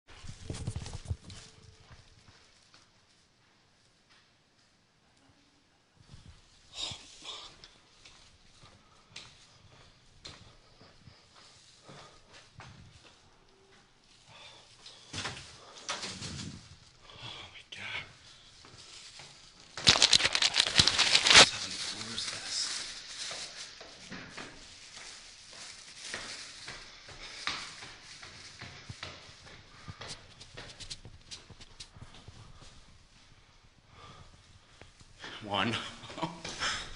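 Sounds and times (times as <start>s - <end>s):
man breathing: 8.6s - 12.6s, 16.9s - 18.9s, 32.3s - 35.4s, 36.4s - 36.9s.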